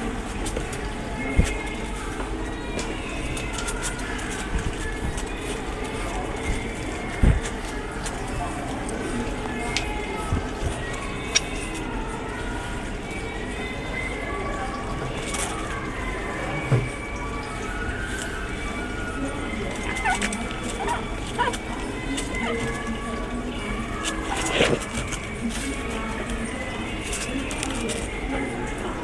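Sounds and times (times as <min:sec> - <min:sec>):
indistinct voices: 0:00.0 - 0:29.0
murmur of room noise: 0:00.0 - 0:29.0.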